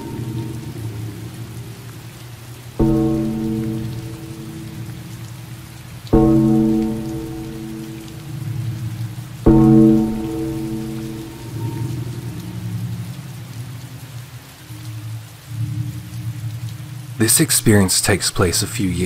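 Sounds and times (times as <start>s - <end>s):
low ringing struck notes: 0.0s - 1.1s, 2.8s - 12.6s
steady rain: 0.0s - 19.0s.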